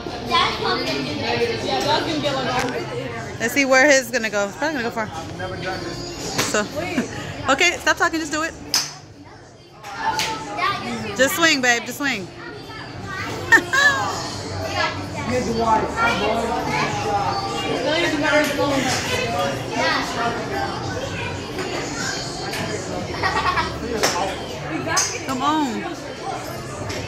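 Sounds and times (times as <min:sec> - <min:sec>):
people chattering with children: 0:00.0 - 0:27.0.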